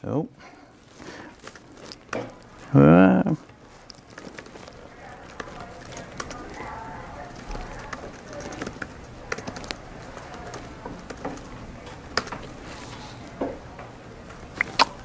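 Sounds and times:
faint murmur of voices: 0.0 - 15.0
laptop keys clicking: 7.3 - 12.5.

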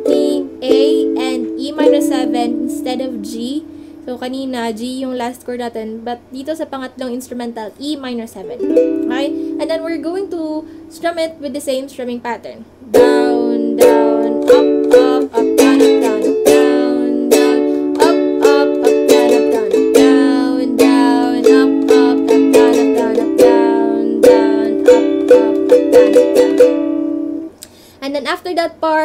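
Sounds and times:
ukulele strumming chords: 0.0 - 5.0, 8.4 - 11.4, 12.8 - 27.6.

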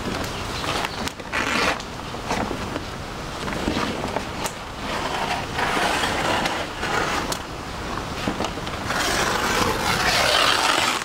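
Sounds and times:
leaf rustling and ripping: 8.8 - 11.0.

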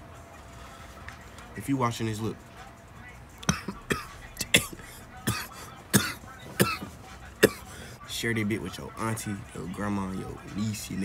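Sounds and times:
man coughing: 3.4 - 7.8.

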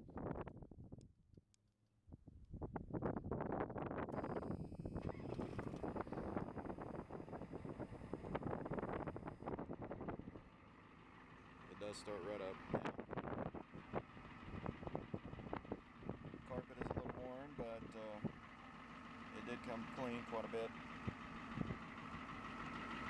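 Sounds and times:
diesel engine starting and running: 4.1 - 23.0.

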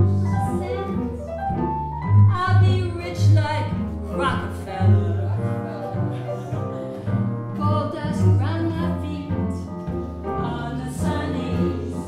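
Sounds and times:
double bass: 0.0 - 12.0
piano: 0.0 - 12.0
woman singing: 2.3 - 5.2, 7.6 - 9.7, 10.4 - 12.0.

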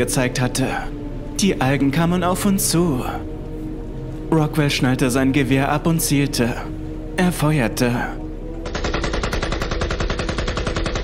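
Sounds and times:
automatic rifle fire: 8.7 - 11.0.

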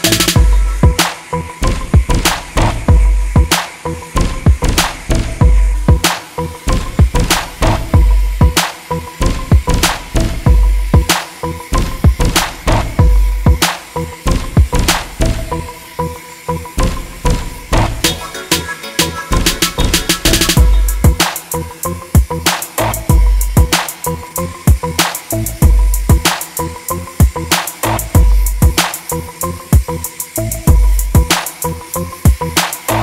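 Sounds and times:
music with drum beat and bass: 0.0 - 33.0.

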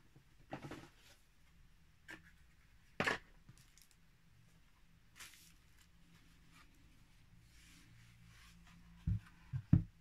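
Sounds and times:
rustle of plastic packaging: 5.1 - 6.0.

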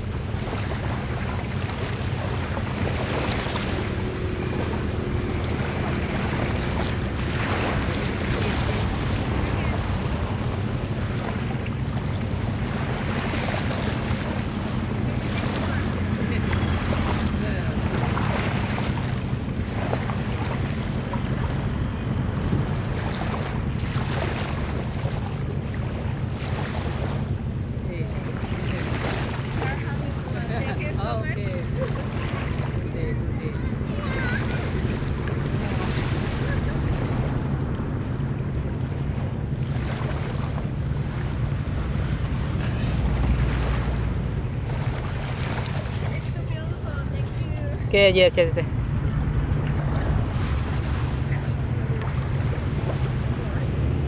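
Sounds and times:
small waves washing in: 0.0 - 54.0.

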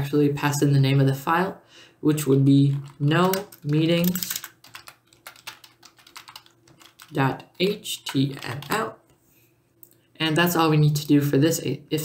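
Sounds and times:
keyboard typing: 2.7 - 8.9.

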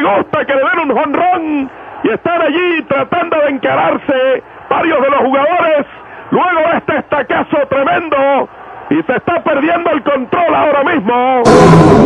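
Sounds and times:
man announcing on radio: 0.0 - 11.5.

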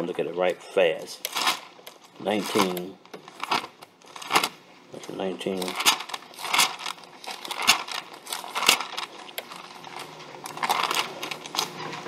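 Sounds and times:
pages being leafed through: 1.2 - 12.0.

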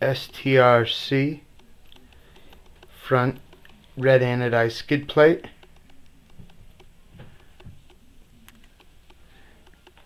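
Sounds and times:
low room hum: 0.0 - 10.0
small handling clicks: 1.5 - 4.2, 4.8 - 10.0
soft thumps: 6.3 - 7.9.

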